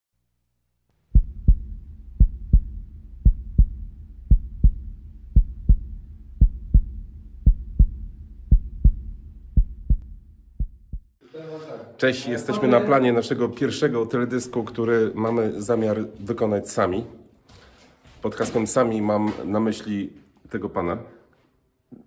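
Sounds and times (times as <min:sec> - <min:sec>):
low steady rumble: 0:01.0 - 0:11.1
heartbeat thumps: 0:01.1 - 0:11.2.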